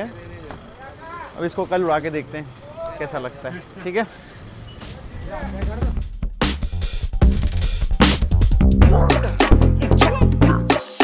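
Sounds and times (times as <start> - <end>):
busy shop rumble: 0.0 - 6.3.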